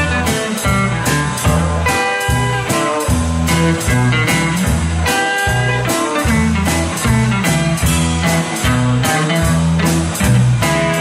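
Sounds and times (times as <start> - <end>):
bass guitar: 0.0 - 11.0
drum kit beat: 0.0 - 11.0
electric guitars: 0.0 - 11.0.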